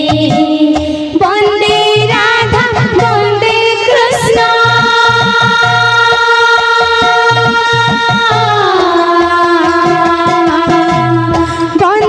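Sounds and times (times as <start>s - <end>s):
drum strokes: 0.0s - 12.0s.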